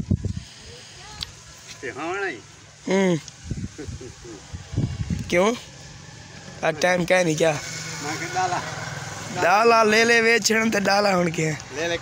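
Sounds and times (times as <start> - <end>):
flour mill engine drone: 2.4 - 12.0.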